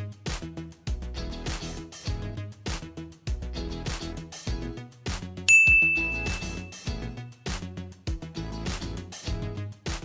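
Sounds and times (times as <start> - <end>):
upbeat music with plucked beat: 0.0 - 10.0
bright chime ding: 5.5 - 7.0.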